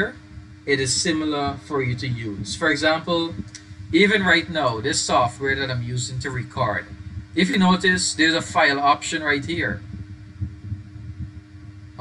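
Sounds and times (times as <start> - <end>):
low rumbling hum: 0.0 - 12.0.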